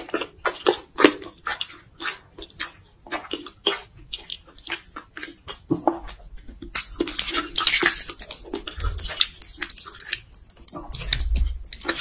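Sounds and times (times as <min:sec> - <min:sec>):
chewing clicks: 0:00.0 - 0:12.0
wet squelching of noodles: 0:00.0 - 0:12.0.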